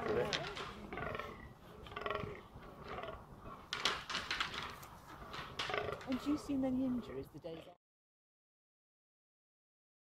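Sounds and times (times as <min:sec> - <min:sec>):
deer groaning: 0:00.0 - 0:04.0, 0:04.6 - 0:07.8.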